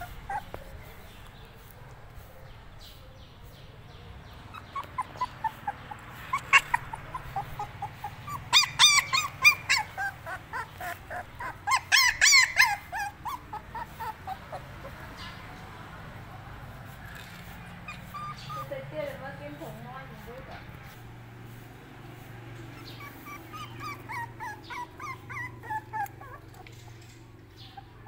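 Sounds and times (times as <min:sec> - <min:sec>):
puppy yelping and whimpering: 0:00.0 - 0:01.3, 0:04.3 - 0:15.4, 0:17.5 - 0:18.8, 0:22.5 - 0:28.0.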